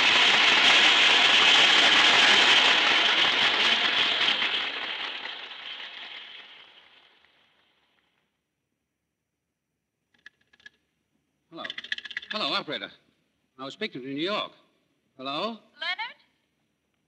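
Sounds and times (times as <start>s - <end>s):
audience applause: 0.0s - 6.9s.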